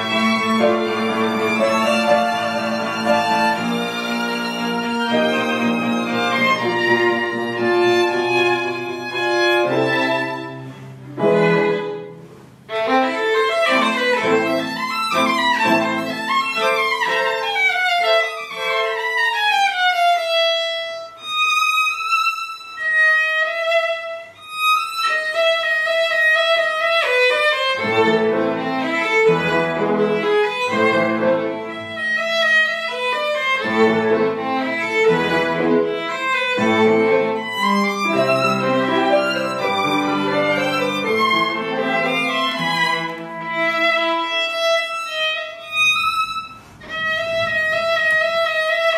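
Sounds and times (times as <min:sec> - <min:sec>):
string quartet playing classical music: 0:00.0 - 0:48.9.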